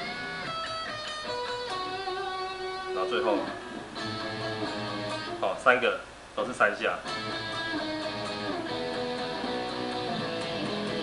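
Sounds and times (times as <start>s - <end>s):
electric guitar double stops: 0.0s - 5.4s, 7.1s - 11.0s.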